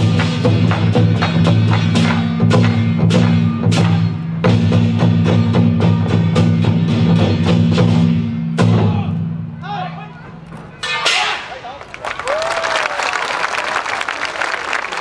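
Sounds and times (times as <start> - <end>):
barrel drums beating: 0.0 - 9.2.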